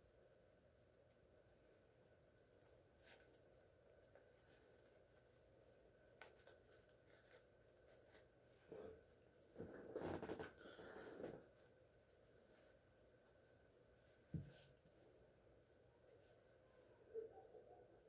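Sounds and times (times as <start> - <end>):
twine and cloth rustling: 1.6 - 15.4.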